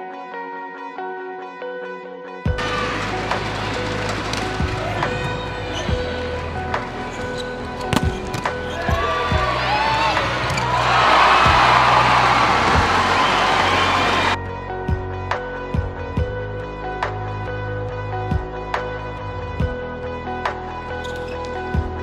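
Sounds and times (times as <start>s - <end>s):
background music: 0.0s - 22.0s
crowd cheering: 2.6s - 6.4s, 8.4s - 14.4s.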